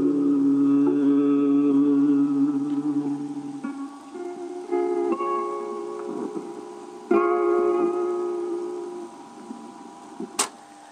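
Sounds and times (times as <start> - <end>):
strummed guitar chord: 0.0 - 10.0
faint tape hiss: 0.0 - 10.9.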